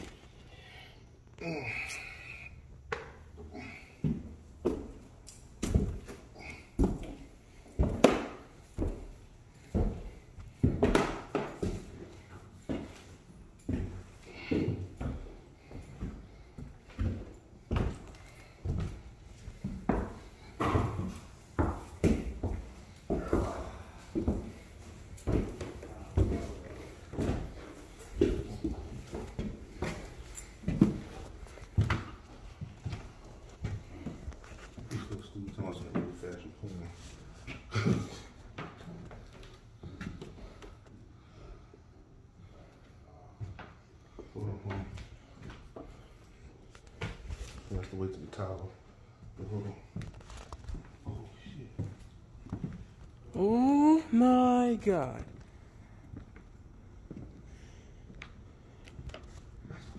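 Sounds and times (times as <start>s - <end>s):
footsteps on hard floors and stairs: 2.9s - 40.9s, 48.8s - 57.5s.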